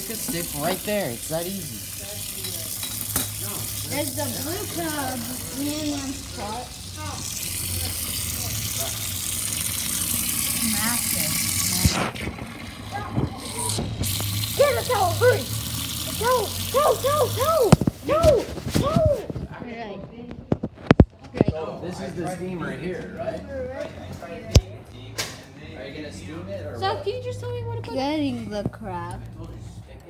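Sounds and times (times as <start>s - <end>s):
tap water running into sink: 0.0s - 18.5s
high voices shouting: 14.4s - 19.3s.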